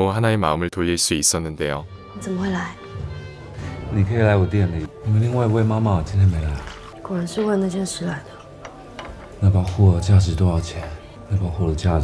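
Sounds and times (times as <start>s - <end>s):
background music: 0.0s - 12.0s
man speaking: 3.8s - 6.8s.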